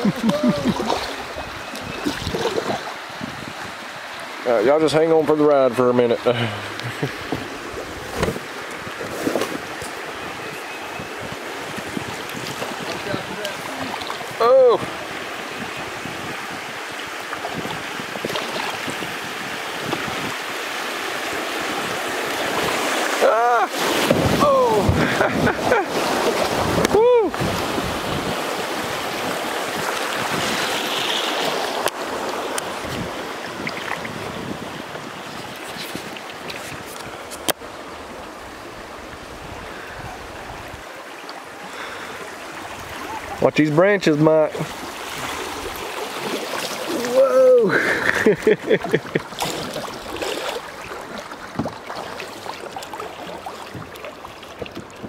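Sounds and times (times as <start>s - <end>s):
creek water rushing over riffles: 0.0s - 55.0s.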